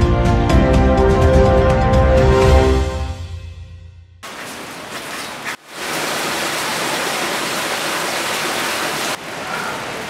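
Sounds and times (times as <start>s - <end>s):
floodwater rushing: 4.2s - 10.0s.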